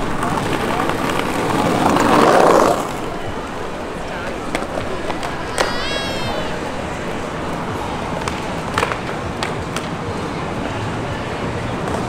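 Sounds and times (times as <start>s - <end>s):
background hubbub: 0.0s - 12.0s
short high cry: 5.4s - 6.8s.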